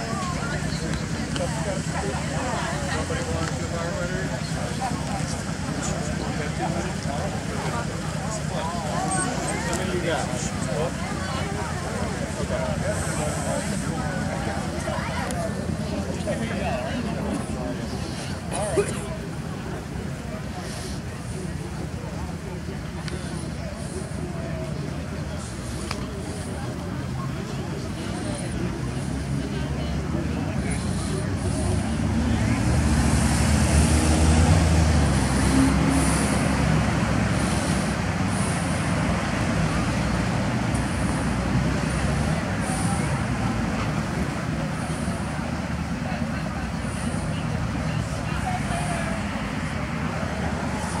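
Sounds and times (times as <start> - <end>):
heavy engine: 0.0 - 51.0
passing road traffic: 0.0 - 51.0.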